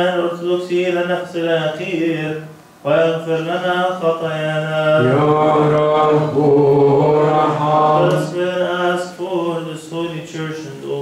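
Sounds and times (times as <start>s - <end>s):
men chanting: 4.6s - 9.7s.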